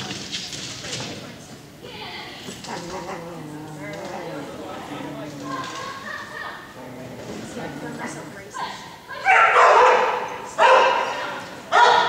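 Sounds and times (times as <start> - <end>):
dog barking with echo: 9.2 - 12.0.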